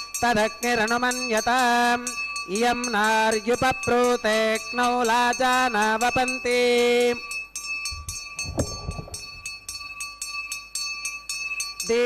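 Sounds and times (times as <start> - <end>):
hand bell ringing fast: 0.0 - 12.0.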